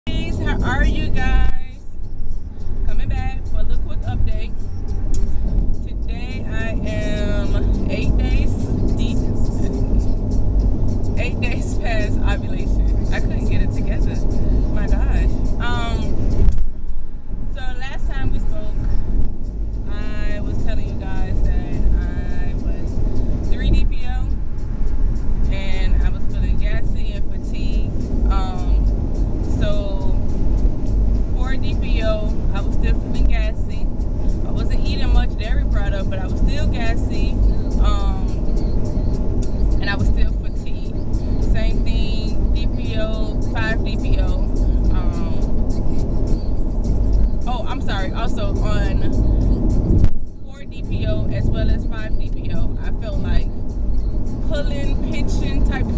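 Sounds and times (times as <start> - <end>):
woman talking: 0.0 - 1.9, 2.8 - 4.6, 5.8 - 10.0, 11.2 - 16.1, 17.5 - 18.9, 19.8 - 22.9, 23.5 - 24.4, 25.4 - 28.8, 29.5 - 30.2, 31.2 - 38.4, 39.7 - 46.0, 47.5 - 49.3, 50.4 - 53.5, 54.4 - 55.9
engine and road noise rumble: 0.0 - 55.9.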